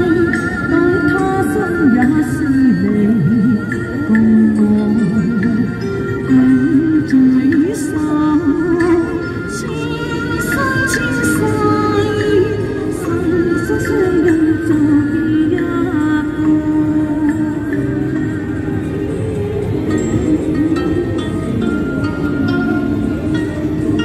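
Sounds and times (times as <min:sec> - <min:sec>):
steady musical accompaniment: 0:00.0 - 0:24.0
woman singing into a microphone: 0:00.0 - 0:24.0.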